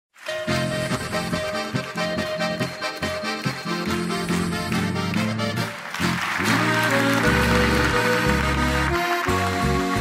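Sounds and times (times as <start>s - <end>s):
folk band with button accordion: 0.3s - 10.0s.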